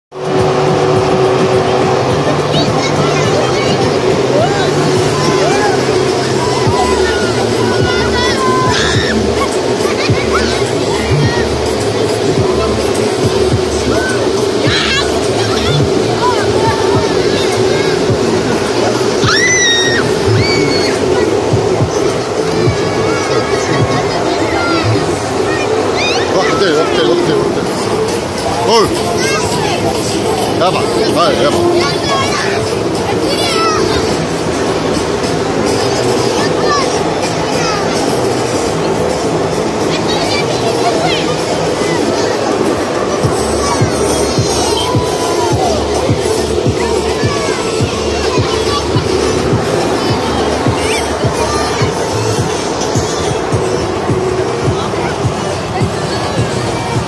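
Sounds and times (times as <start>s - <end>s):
dance music bass line: 0.1s - 41.6s, 43.0s - 57.0s
blower rush of air: 0.1s - 57.0s
children shouting: 0.2s - 57.0s.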